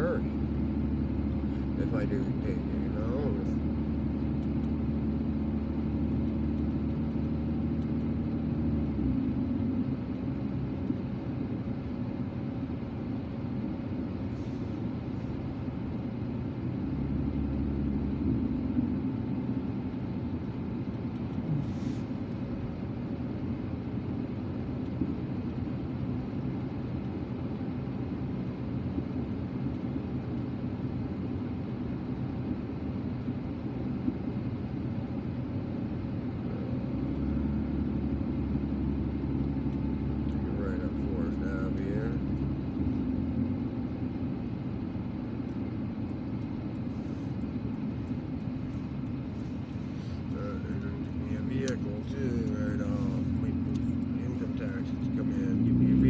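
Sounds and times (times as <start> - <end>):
car road and engine noise: 0.0 - 56.0.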